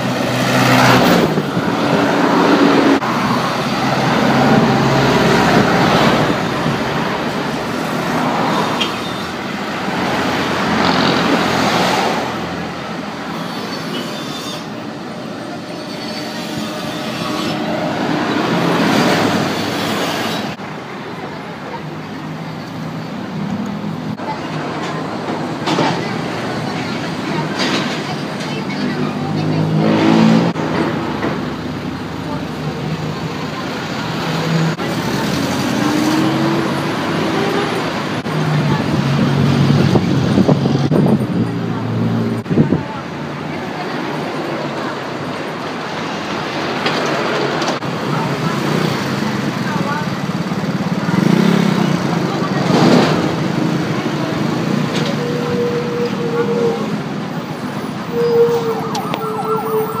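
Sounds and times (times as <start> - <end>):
road traffic passing close: 0.0 - 60.0.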